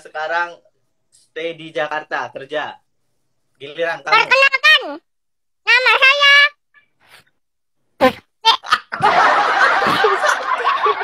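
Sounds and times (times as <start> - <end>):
two people laughing: 8.6 - 11.0.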